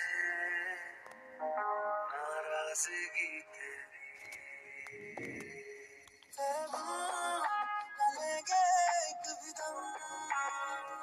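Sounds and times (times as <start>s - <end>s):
person singing over music: 0.0s - 11.0s.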